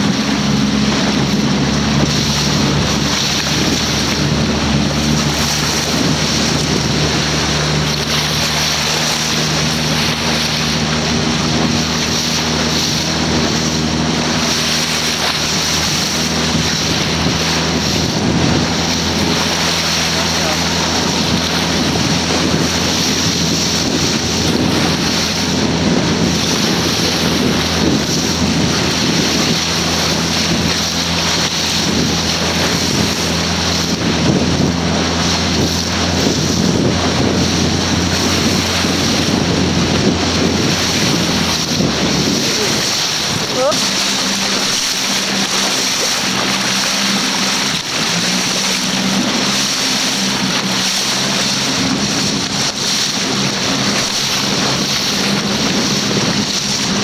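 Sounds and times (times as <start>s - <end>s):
boat motor running: 0.0s - 57.0s
water rushing past hull: 0.0s - 57.0s
wind on microphone: 0.0s - 57.0s.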